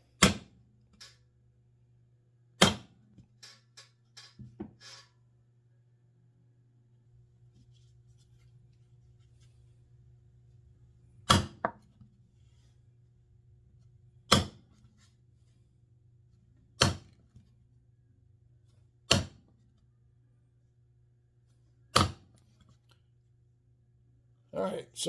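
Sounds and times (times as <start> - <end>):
faint low hum: 5.3 - 25.0.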